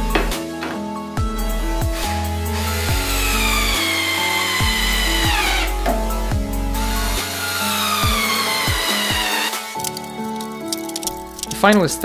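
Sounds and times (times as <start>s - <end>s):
background music with steady beat: 0.0s - 12.0s
cordless drill motor whine: 2.6s - 5.8s, 6.8s - 9.7s.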